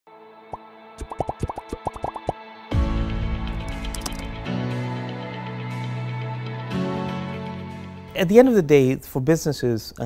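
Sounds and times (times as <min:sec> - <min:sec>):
bubbly rising blips: 0:01.0 - 0:02.4.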